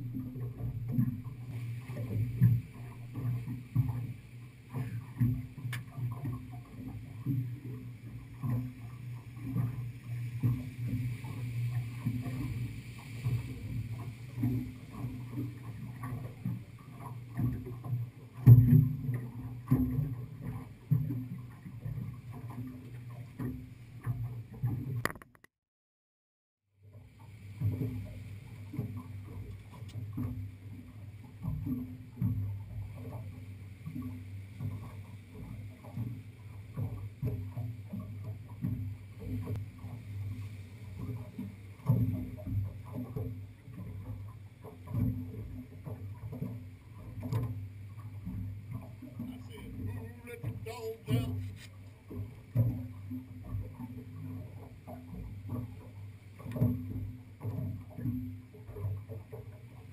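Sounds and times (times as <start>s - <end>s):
hollow thumps on hull: 0.0s - 25.4s, 27.6s - 59.9s
water slapping against boat hull: 0.0s - 25.4s, 26.8s - 59.9s
outboard motor idling: 26.9s - 59.9s.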